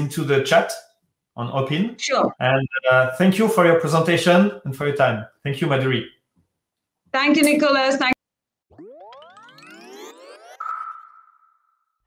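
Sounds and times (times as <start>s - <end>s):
rising electronic tone sweep: 8.7s - 12.0s.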